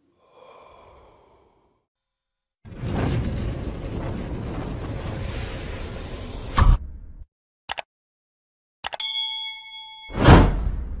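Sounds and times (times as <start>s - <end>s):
whoosh with deep rumble: 2.7s - 7.2s
bright bell ding: 9.0s - 10.5s.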